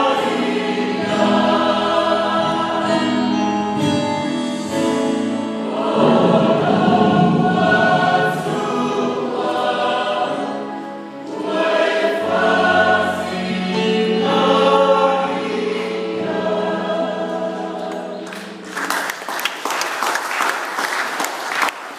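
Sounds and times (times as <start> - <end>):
choir singing a hymn: 0.0 - 18.8
congregation applauding: 18.2 - 21.9.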